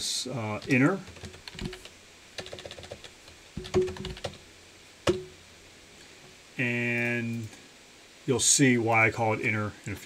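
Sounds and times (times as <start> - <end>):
typing on computer keyboard: 0.6 - 4.4.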